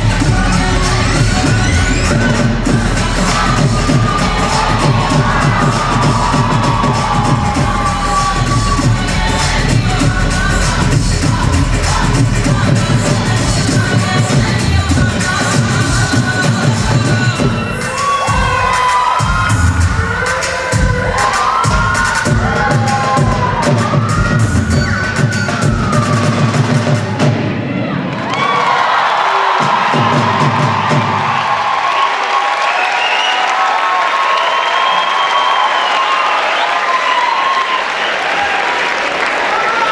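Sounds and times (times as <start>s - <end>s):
bhangra music with drum beat: 0.0s - 27.7s, 29.6s - 31.5s
audience cheering and shouting: 0.0s - 39.9s
shouts over music: 3.2s - 9.6s, 17.6s - 39.9s.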